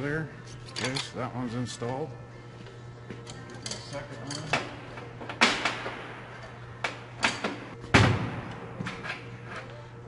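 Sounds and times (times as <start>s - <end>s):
steady low hum: 0.0s - 10.0s
metal parts clanking on workbench: 0.7s - 1.2s.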